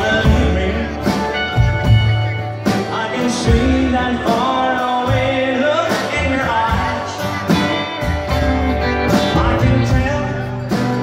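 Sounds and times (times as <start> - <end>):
acoustic guitar: 0.0 - 11.0
drums: 0.0 - 11.0
electric guitar: 0.0 - 11.0
upright bass: 0.0 - 11.0.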